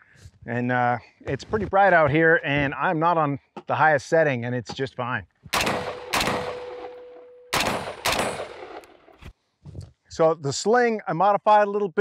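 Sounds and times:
rifle shots echoing: 5.5 - 9.2
faint ringing tone: 6.6 - 7.5.

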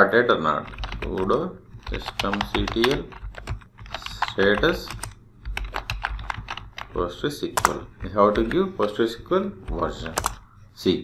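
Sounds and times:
computer keyboard typing: 0.5 - 10.5.

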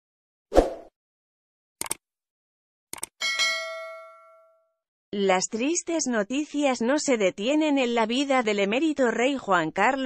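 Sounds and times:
notification bell ding: 3.2 - 4.7.

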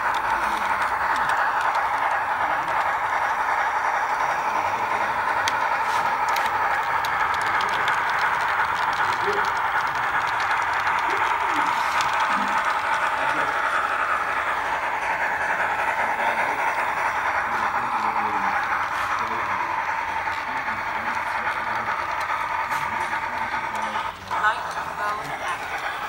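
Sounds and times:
faint voices: 0.0 - 26.0
model train motor whirring: 0.0 - 26.0.

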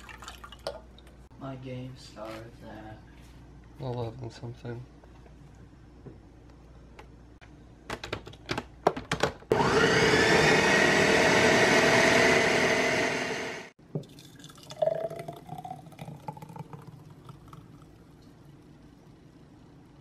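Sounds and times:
blender running: 9.5 - 13.8
smoothie pouring into glass: 11.1 - 18.4.

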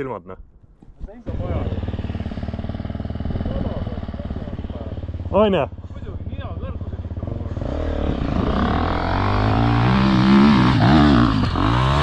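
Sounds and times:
dirt bike engine idling: 1.2 - 12.0.

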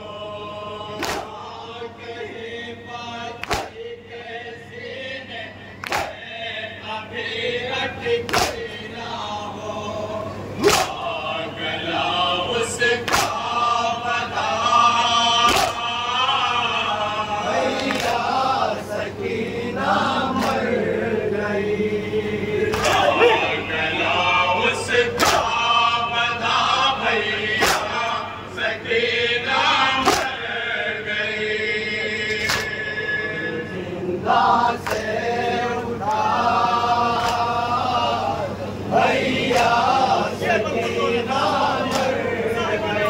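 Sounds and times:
men chanting in unison: 0.0 - 43.0
chest-beating slap: 1.0 - 1.3, 3.4 - 3.8, 5.8 - 6.1, 8.3 - 8.6, 10.6 - 11.0, 15.5 - 15.8, 25.2 - 25.5, 30.0 - 30.3
hand slaps on chests: 1.0 - 1.4, 3.4 - 3.8, 5.8 - 6.2, 8.3 - 8.7, 10.6 - 11.0, 13.0 - 13.4, 15.5 - 15.8, 20.3 - 20.7, 22.7 - 23.1, 25.2 - 25.5, 27.6 - 27.9, 30.0 - 30.4, 32.3 - 32.8, 34.8 - 35.1, 37.2 - 37.5, 39.5 - 39.8, 41.8 - 42.2.

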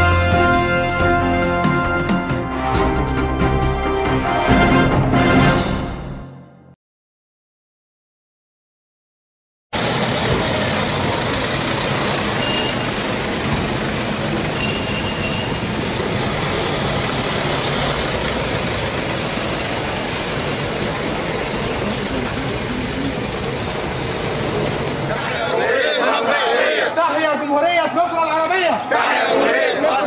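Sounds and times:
heavy outdoor noise: 0.0 - 6.1, 9.8 - 30.0
vehicle engines driving off: 9.8 - 27.3
short high beeps: 12.4 - 12.9.

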